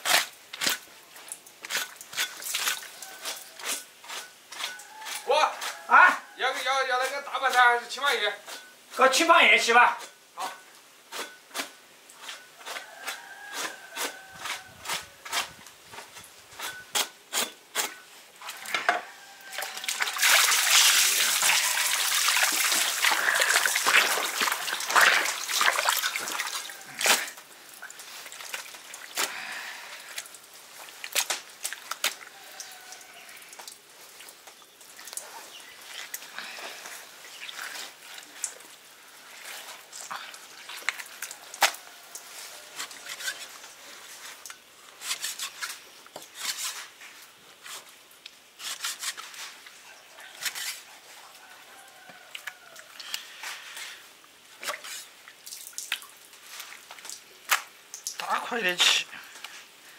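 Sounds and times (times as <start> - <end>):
water splashing in basin: 19.5 - 29.4
soft wet squishes: 19.5 - 58.3.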